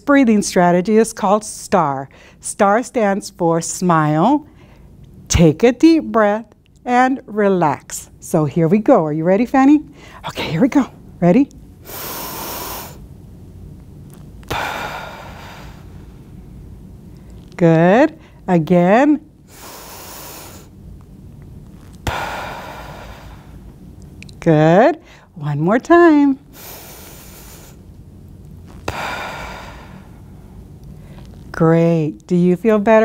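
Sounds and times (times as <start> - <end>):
long exhale: 11.8 - 13.0, 14.5 - 16.0, 19.5 - 20.7, 22.0 - 23.6, 26.5 - 27.8, 28.9 - 31.2
woman breathing in deeply: 11.8 - 13.0, 14.5 - 16.2, 19.5 - 20.7, 22.0 - 23.7, 25.0 - 25.3, 26.5 - 27.8, 28.8 - 31.3.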